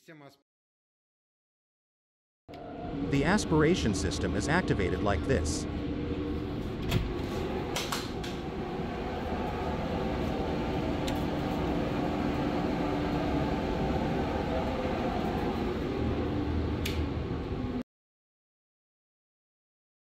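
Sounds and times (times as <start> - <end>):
dust collector motor hum: 2.6 - 17.8.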